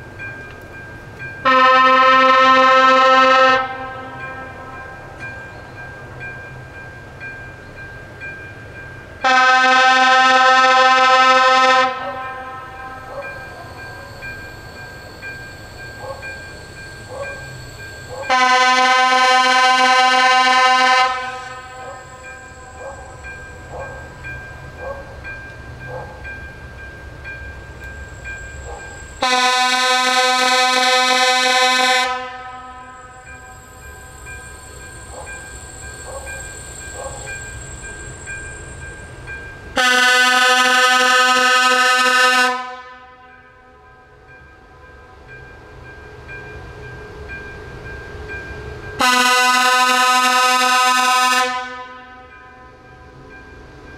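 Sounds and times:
faint rail hum: 0:00.0 - 0:53.9
locomotive horn blasts: 0:01.4 - 0:04.8, 0:09.2 - 0:13.2, 0:18.3 - 0:22.0, 0:29.2 - 0:33.2, 0:39.8 - 0:43.5, 0:49.0 - 0:52.3.

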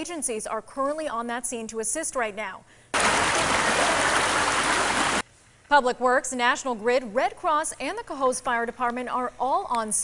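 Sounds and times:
water rushing loudly: 0:03.0 - 0:05.2.

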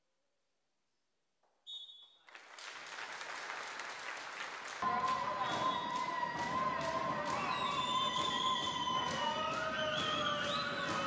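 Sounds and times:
crowd applauding: 0:02.2 - 0:11.0
referee's whistle blast: 0:05.2 - 0:11.0.

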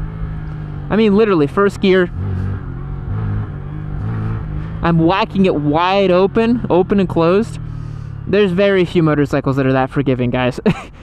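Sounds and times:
motorcycle engine revving: 0:00.0 - 0:09.6.

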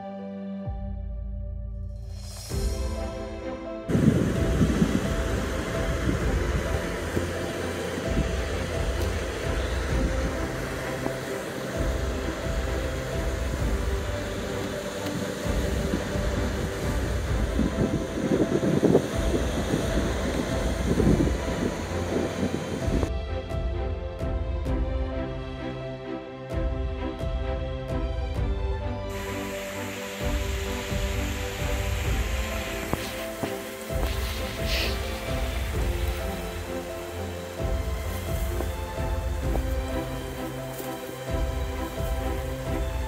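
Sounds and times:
waves washing up on sand: 0:02.5 - 0:23.1, 0:29.1 - 0:43.0
wind gusting on microphone: 0:03.8 - 0:23.3, 0:28.4 - 0:43.0.

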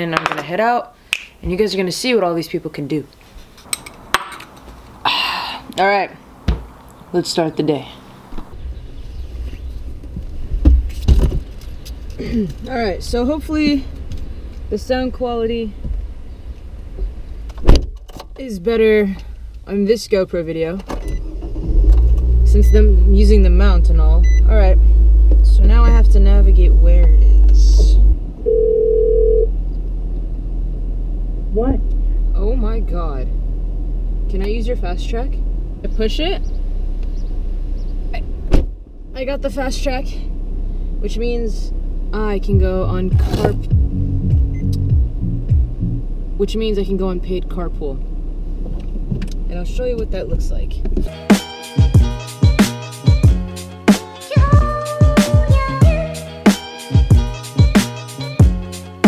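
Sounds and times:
deep in-car rumble: 0:07.6 - 0:51.1, 0:54.4 - 0:56.2
steady electronic beep: 0:24.2 - 0:24.5, 0:43.8 - 0:46.0.

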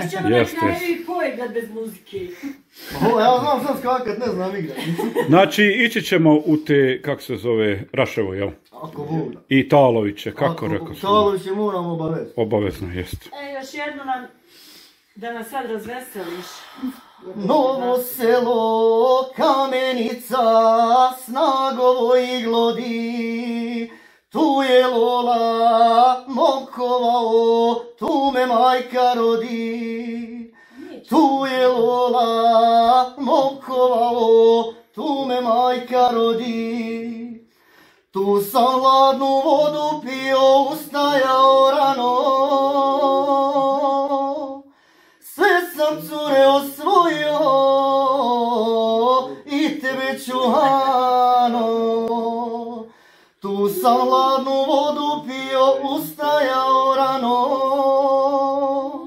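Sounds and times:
man singing unaccompanied: 0:02.9 - 0:06.9, 0:08.7 - 0:13.1, 0:17.2 - 0:59.0.

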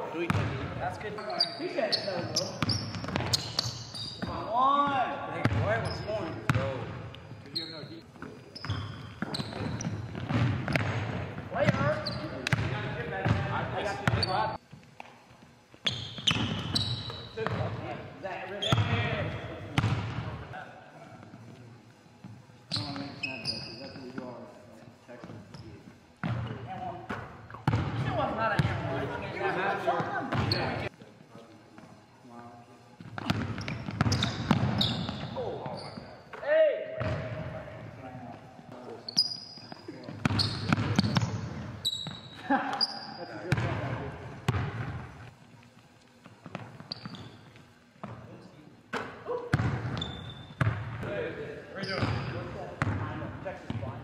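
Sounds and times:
basketballs bouncing on hardwood: 0:00.2 - 0:00.7, 0:02.4 - 0:03.4, 0:08.6 - 0:14.3, 0:26.2 - 0:28.9, 0:33.0 - 0:35.2, 0:37.0 - 0:37.6, 0:40.2 - 0:42.2, 0:43.5 - 0:45.1, 0:48.9 - 0:51.1
sneaker squeaks: 0:00.2 - 0:20.2, 0:22.2 - 0:24.5, 0:25.2 - 0:28.7, 0:30.3 - 0:30.9, 0:33.0 - 0:36.4, 0:38.8 - 0:43.7, 0:46.2 - 0:48.2, 0:49.0 - 0:51.0, 0:51.7 - 0:53.9.

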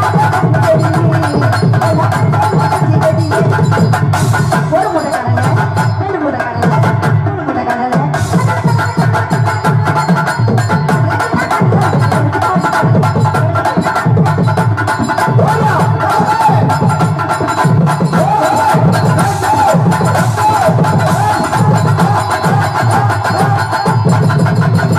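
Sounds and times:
harmonium melody: 0:00.0 - 0:24.9
tabla and hand drums: 0:00.0 - 0:24.9.

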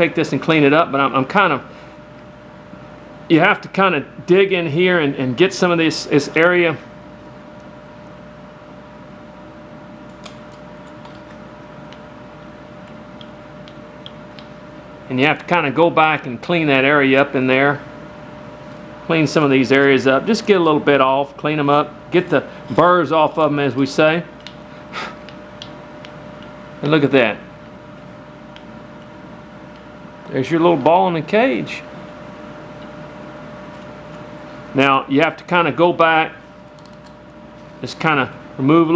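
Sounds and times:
faint constant whine: 0:00.0 - 0:38.9
steady background hum: 0:00.0 - 0:38.9.

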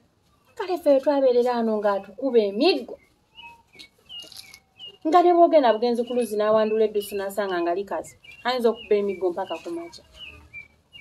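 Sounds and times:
bird chirping: 0:00.3 - 0:11.0.

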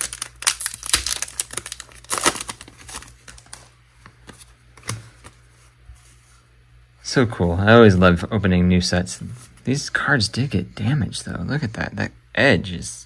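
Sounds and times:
foil wrapper tearing and crinkling: 0:00.0 - 0:03.7
cards rustling: 0:00.0 - 0:06.2.

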